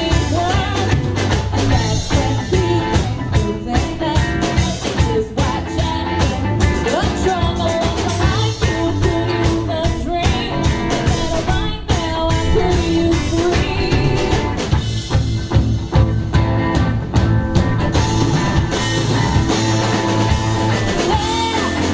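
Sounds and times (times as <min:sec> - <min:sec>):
woman singing: 0:00.0 - 0:14.7, 0:20.6 - 0:21.9
bass guitar: 0:00.0 - 0:21.9
drum kit: 0:00.0 - 0:21.9
electric guitar: 0:00.0 - 0:21.9.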